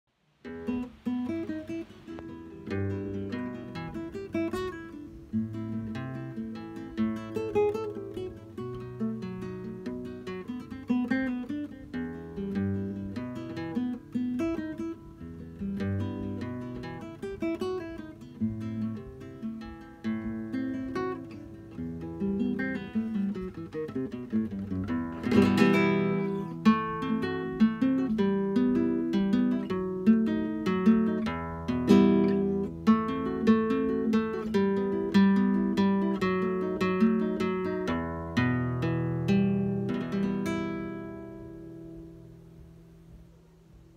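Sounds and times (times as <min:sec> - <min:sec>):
fingerpicked flamenco guitar: 0:00.3 - 0:43.9.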